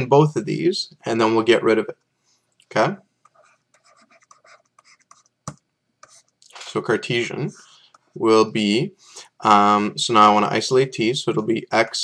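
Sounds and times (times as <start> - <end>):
stylus scratching on surface: 3.2 - 5.3, 6.0 - 6.4.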